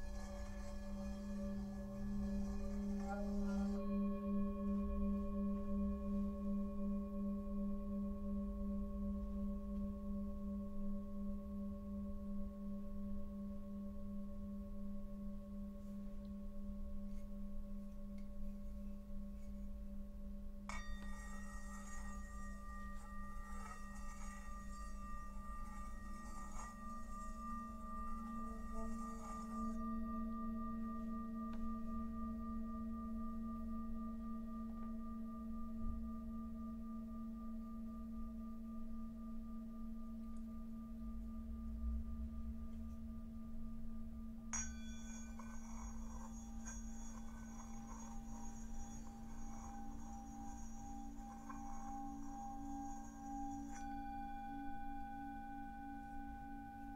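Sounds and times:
singing bowls ringing: 0.0 - 56.9
singing bowl struck: 20.6 - 37.7, 44.4 - 56.9.

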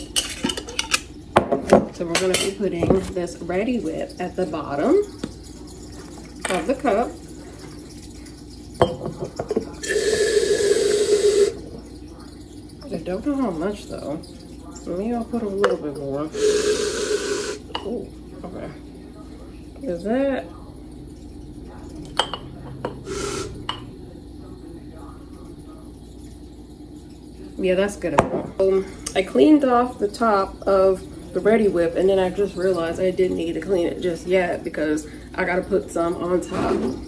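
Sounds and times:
whipped cream spray hissing: 16.3 - 17.7.

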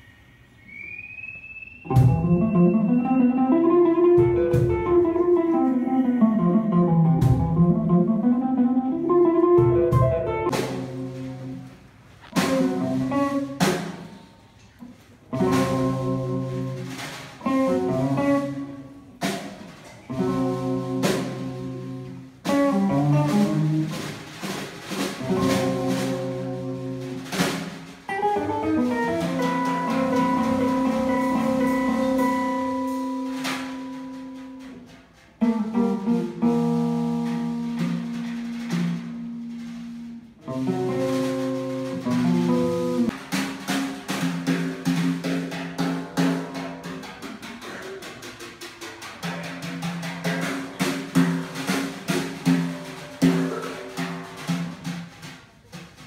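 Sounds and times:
drum kit hits: 1.9 - 14.3, 15.3 - 56.0
hollow-body guitar playing: 1.9 - 14.3, 15.2 - 43.2, 49.3 - 55.7.

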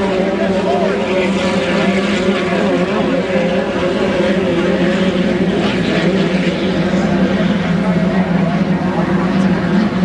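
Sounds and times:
racing boat engines droning: 0.0 - 10.0.

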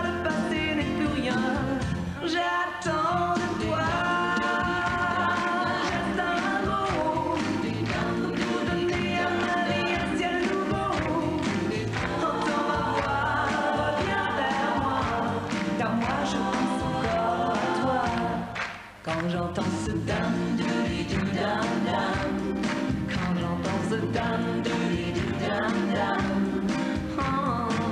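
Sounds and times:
woman singing pop song: 0.0 - 27.9
full band playing: 19.6 - 27.9.

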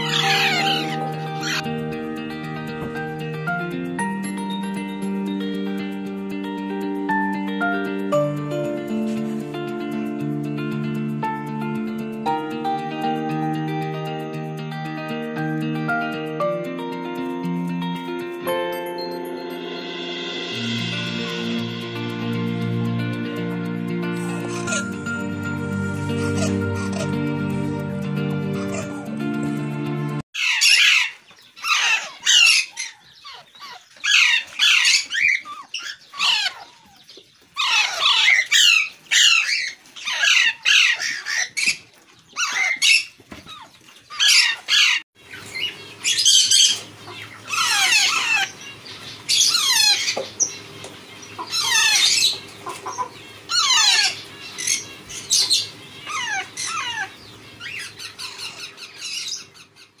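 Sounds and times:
parakeet chicks squawking: 0.0 - 1.8, 24.1 - 27.6, 28.4 - 29.2, 30.4 - 60.0.

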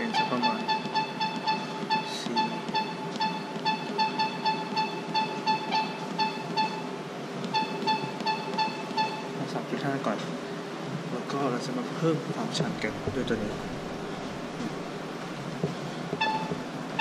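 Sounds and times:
rapid electronic beeps: 0.0 - 9.4, 16.2 - 17.0
steady low hum: 0.0 - 17.0.

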